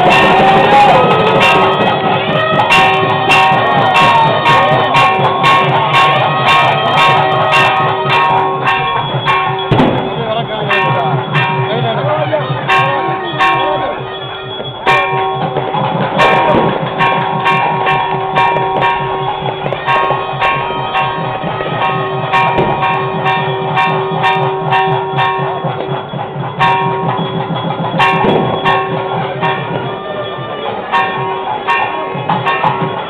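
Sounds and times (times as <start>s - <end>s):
fast low beat: 0.0s - 30.0s
bells ringing: 0.0s - 33.0s.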